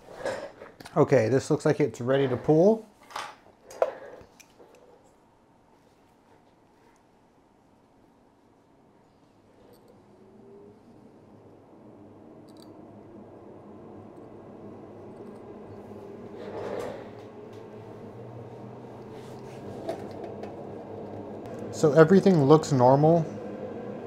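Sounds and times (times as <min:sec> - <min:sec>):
low hum: 0:09.5 - 0:24.0.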